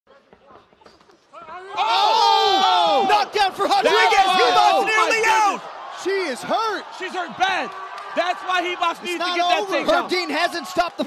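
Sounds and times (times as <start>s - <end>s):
crowd shouting excitedly: 1.6s - 11.0s.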